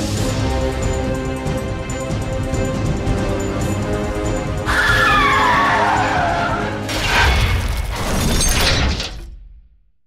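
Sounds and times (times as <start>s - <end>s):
car tyres screeching: 4.7s - 6.9s.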